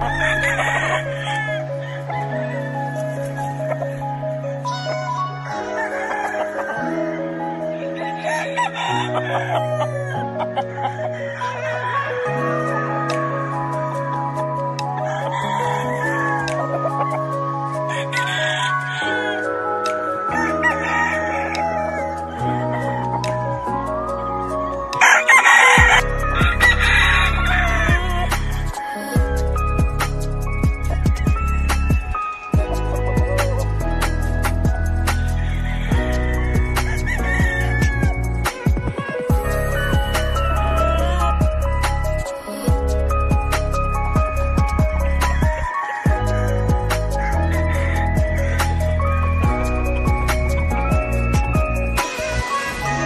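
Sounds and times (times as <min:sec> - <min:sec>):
rooster crowing: 0:00.0 - 0:03.8, 0:05.4 - 0:12.7, 0:14.8 - 0:19.5, 0:20.3 - 0:23.7, 0:25.0 - 0:29.2, 0:30.5 - 0:42.7, 0:43.7 - 0:53.0
background music: 0:00.0 - 0:53.0.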